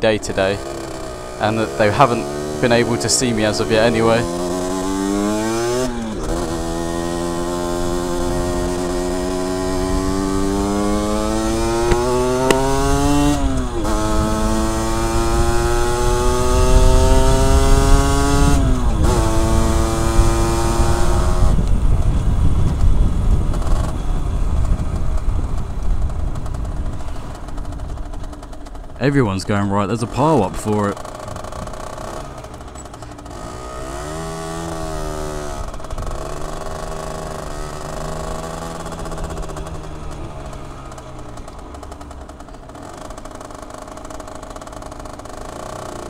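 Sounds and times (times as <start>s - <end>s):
motorcycle engine accelerating: 0.0s - 46.0s
wind rumble on microphone: 7.8s - 28.3s.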